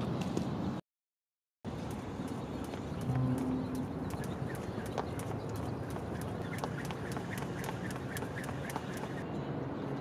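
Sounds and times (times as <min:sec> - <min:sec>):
jump rope slapping asphalt: 0:01.9 - 0:09.2.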